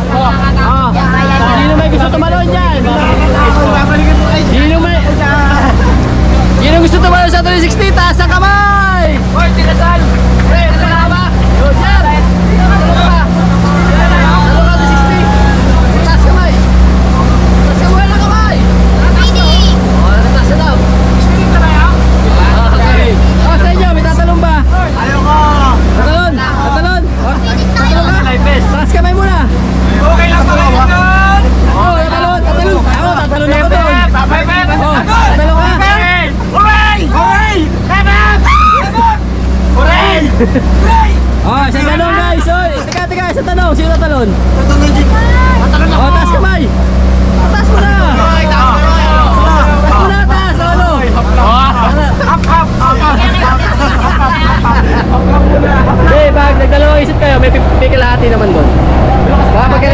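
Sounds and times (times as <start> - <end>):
boat engine droning: 0.0 - 59.9
passengers talking and laughing: 0.0 - 59.9.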